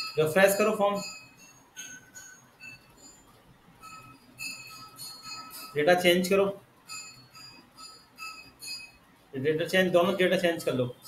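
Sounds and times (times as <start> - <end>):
high ringing pings: 0.0 - 11.0.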